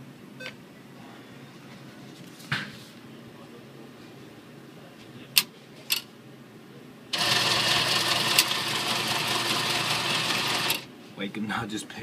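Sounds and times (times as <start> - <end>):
atm mechanism whirring: 7.1 - 10.9.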